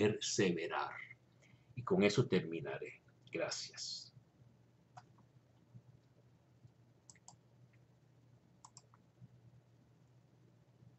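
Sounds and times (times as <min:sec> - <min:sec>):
faint low hum: 0:00.0 - 0:10.9
computer mouse clicks: 0:04.9 - 0:07.9, 0:08.6 - 0:09.4.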